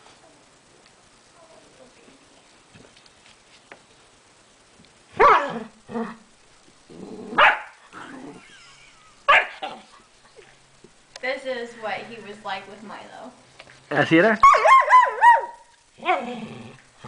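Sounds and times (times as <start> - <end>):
dogs barking and growling: 5.1 - 10.1, 14.4 - 17.0.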